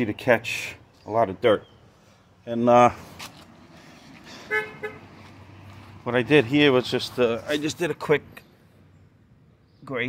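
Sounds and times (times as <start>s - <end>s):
horn toots: 4.3s - 5.1s.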